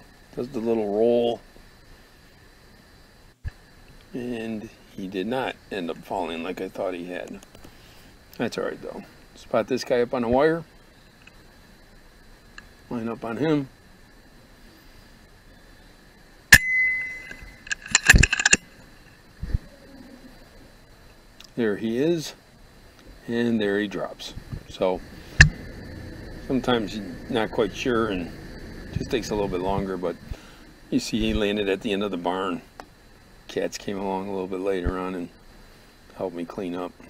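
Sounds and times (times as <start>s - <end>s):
faint background hiss: 0.0s - 37.0s
metallic clicks and clunks: 16.6s - 18.6s
low bump: 24.4s - 30.4s
short low thump: 25.3s - 25.7s.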